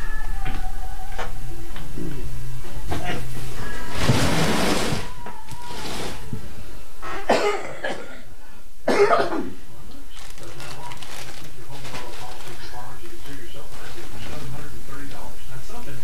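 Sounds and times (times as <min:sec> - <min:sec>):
woman coughing: 0:07.1 - 0:08.2, 0:08.9 - 0:09.6
cardboard box rustling: 0:10.2 - 0:13.4.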